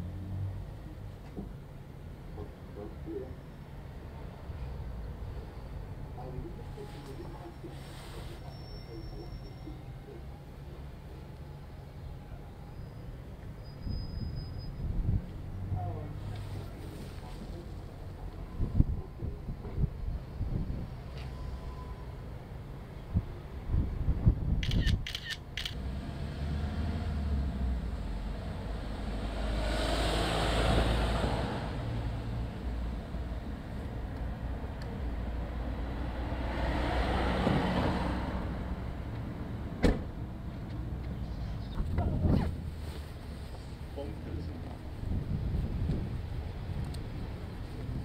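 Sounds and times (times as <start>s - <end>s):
low street rumble: 0.0s - 48.0s
sharp clicks: 24.6s - 25.8s
car passing: 24.8s - 41.0s.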